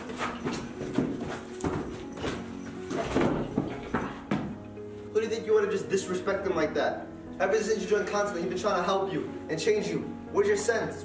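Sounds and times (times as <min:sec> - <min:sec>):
thuds and footfalls: 0:00.0 - 0:04.6
background music: 0:00.0 - 0:11.0.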